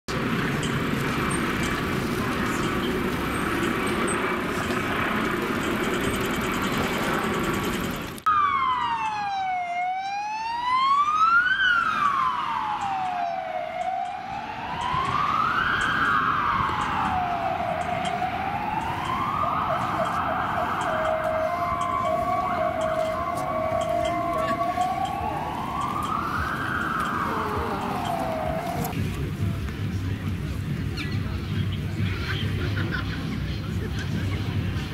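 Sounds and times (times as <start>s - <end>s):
helicopter rotor: 0.1s - 8.3s
ambulance siren wailing: 0.2s - 29.0s.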